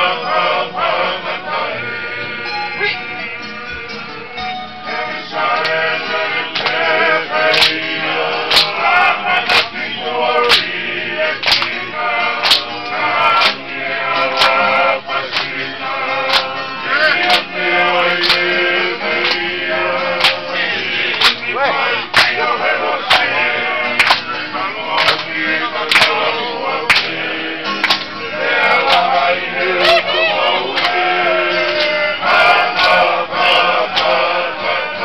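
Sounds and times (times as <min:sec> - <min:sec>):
group of voices singing: 0:00.0 - 0:35.0
hand clapping: 0:05.4 - 0:34.3
sharp crack on the beat: 0:07.5 - 0:08.8, 0:10.5 - 0:10.8, 0:11.4 - 0:11.8, 0:12.4 - 0:12.8, 0:25.0 - 0:26.2.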